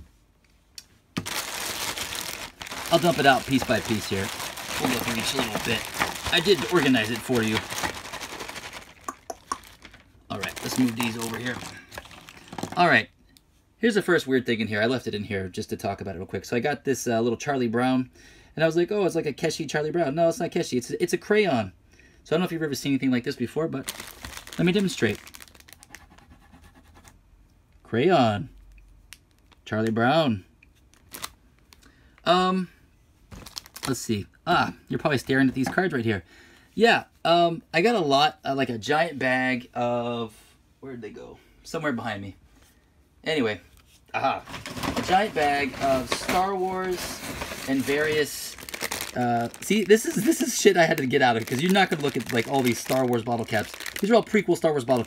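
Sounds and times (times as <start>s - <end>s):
plastic bag crinkling: 1.2s - 13.0s, 23.8s - 26.0s, 30.9s - 31.8s, 33.3s - 34.2s, 44.4s - 55.0s.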